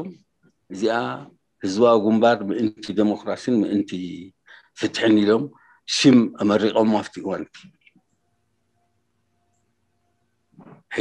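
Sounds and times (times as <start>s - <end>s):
faint hum: 0.0s - 11.0s
man talking: 0.7s - 7.7s.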